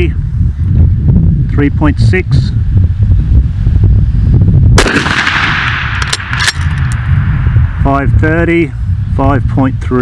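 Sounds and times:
rifle shot echoing: 4.8s - 7.9s.

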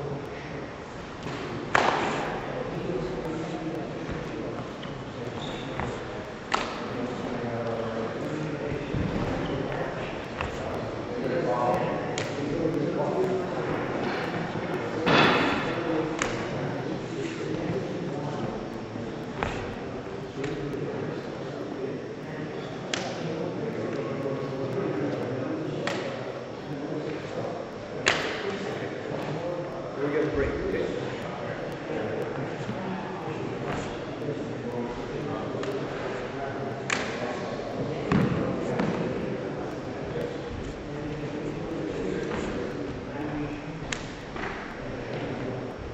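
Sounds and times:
voices echoing in a large hall: 0.0s - 45.9s.

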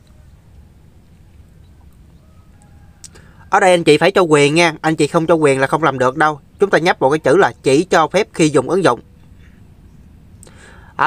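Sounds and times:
faint low background noise: 0.0s - 11.0s
mouth click: 2.6s - 3.2s, 10.4s - 10.6s
soft intake of breath: 3.1s - 3.5s, 10.4s - 11.0s.

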